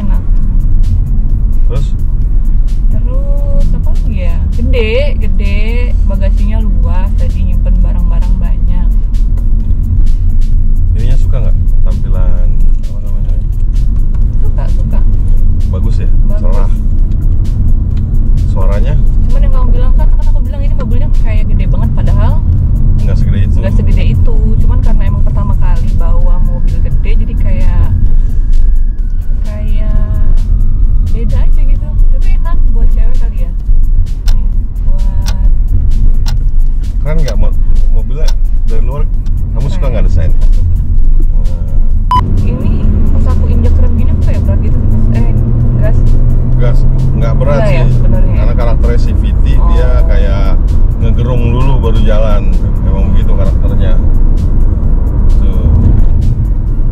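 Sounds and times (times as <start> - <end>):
people talking: 0.0 - 0.3, 3.0 - 8.9, 11.0 - 13.4, 14.4 - 16.8, 18.6 - 22.4, 23.0 - 28.0, 29.4 - 30.4, 31.2 - 33.6, 34.3 - 35.6, 37.0 - 40.4, 42.4 - 46.0, 46.6 - 54.0, 55.4 - 55.7
background music: 0.0 - 56.9
road and engine rumble: 0.0 - 56.9.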